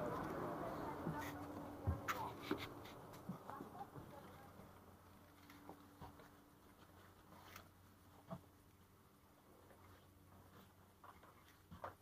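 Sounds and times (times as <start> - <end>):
light footsteps: 0.0 - 4.4.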